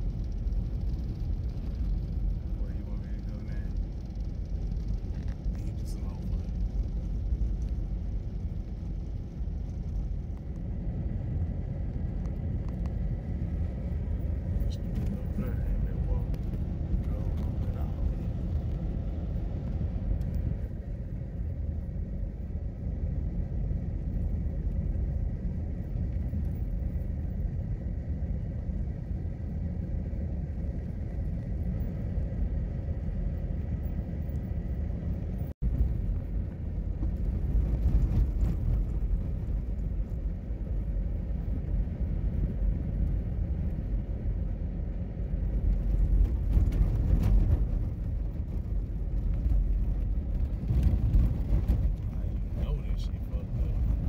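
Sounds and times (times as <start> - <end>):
car engine rumble: 0.0 - 54.0.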